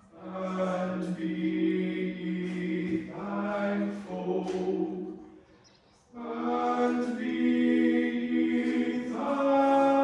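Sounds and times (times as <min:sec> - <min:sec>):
group singing slow held notes: 0:00.0 - 0:10.0.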